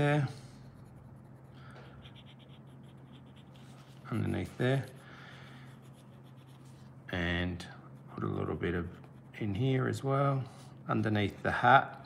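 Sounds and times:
pencil scratching on paper: 0.0 - 7.0, 8.0 - 10.9
steady low hum: 0.0 - 12.0.

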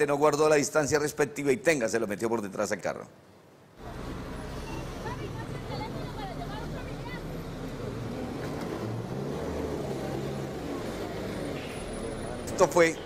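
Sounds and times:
people talking: 5.0 - 7.3.

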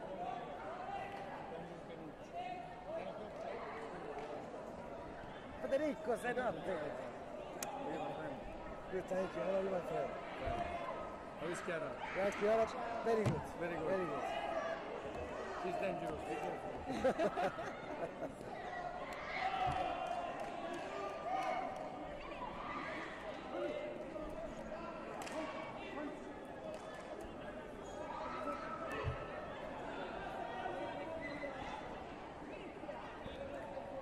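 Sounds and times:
sports hall background noise: 0.0 - 34.0.

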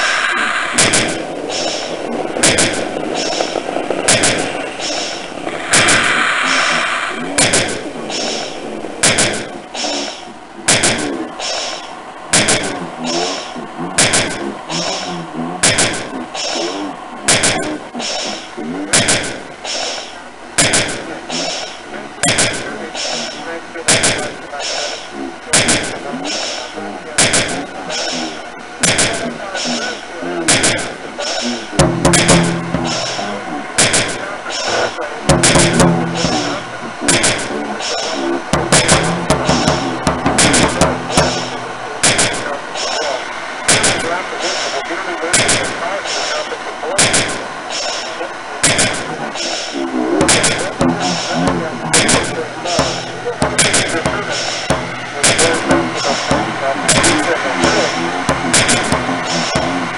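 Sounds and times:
dense noisy bed: 0.0 - 59.9
low voice-like drones: 0.0 - 59.9
sharp bangs: 0.0 - 59.9.

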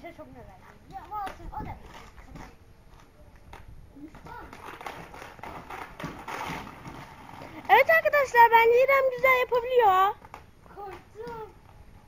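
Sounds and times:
skate wheels rolling on concrete: 0.0 - 12.0
skate clicks and taps: 0.6 - 12.0.

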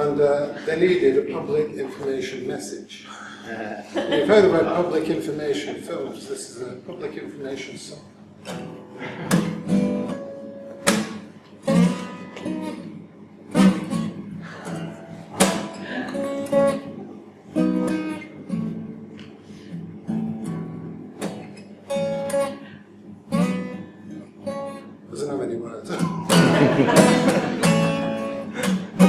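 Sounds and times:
acoustic guitar strumming chords: 8.2 - 25.1, 26.0 - 29.0.

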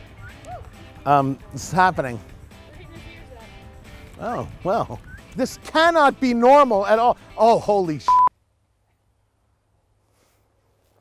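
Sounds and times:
censor bleep tone: 8.1 - 8.3.

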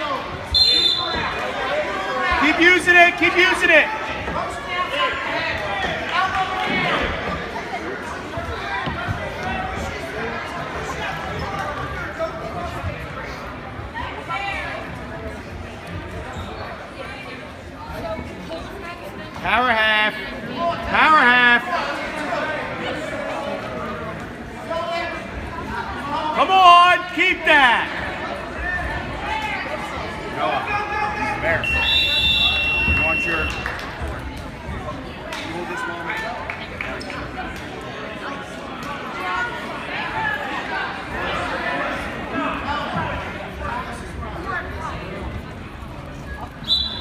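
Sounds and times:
crowd shouting: 26.2 - 29.6.

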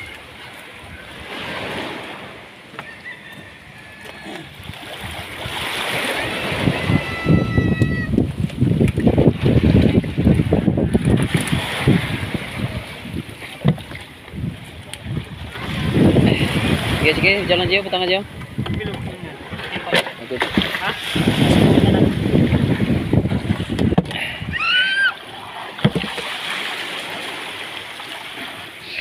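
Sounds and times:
water lapping around boat: 0.0 - 29.0
wind buffeting microphone: 3.3 - 24.8.

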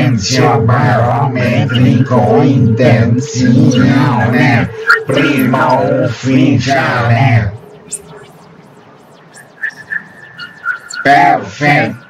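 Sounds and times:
steady electronic tone: 0.0 - 12.0
swooping electronic sweeps: 0.0 - 12.0
high electronic beeps: 0.3 - 12.0.

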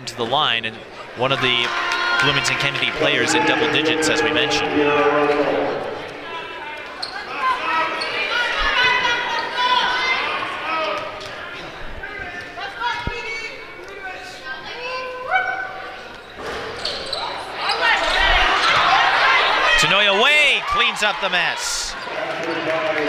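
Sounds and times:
high voices calling and shouting: 2.3 - 6.2.

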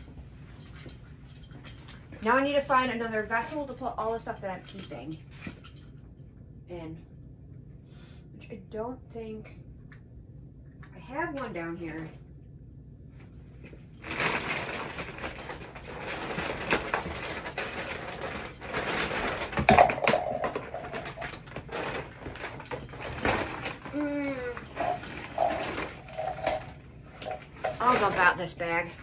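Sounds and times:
plastic bags rustling and crinkling: 13.9 - 29.0.

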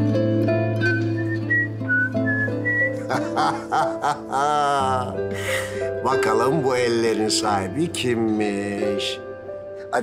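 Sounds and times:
high whistle-like melody: 0.7 - 3.1.

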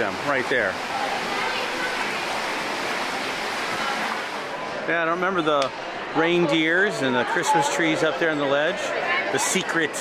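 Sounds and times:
water running from spring: 0.0 - 4.6.

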